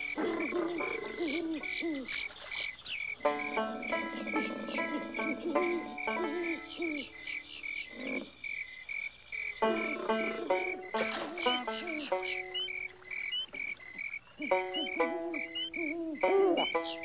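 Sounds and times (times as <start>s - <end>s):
crickets chirping: 0.0s - 17.0s
frogs croaking: 0.0s - 17.0s.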